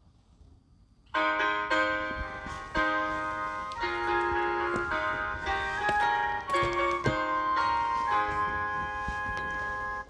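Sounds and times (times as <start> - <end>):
bell-like keyboard chord: 1.2 - 10.0.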